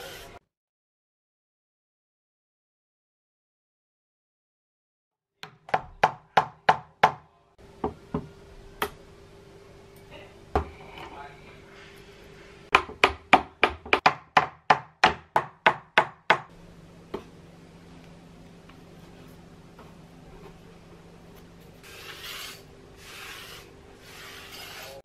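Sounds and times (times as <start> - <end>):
hammer knocking on wooden box: 12.7 - 16.5.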